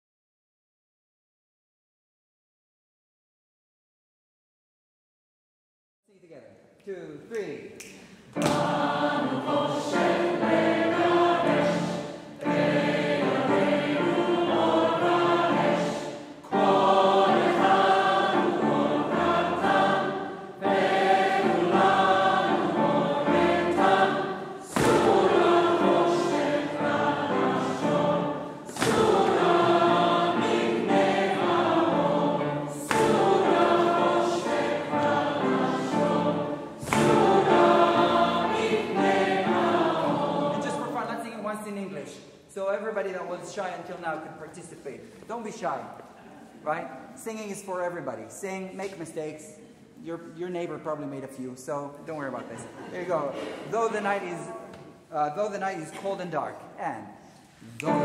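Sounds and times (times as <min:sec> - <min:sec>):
mixed choir singing: 0:08.4 - 0:41.2, 0:57.6 - 0:58.0.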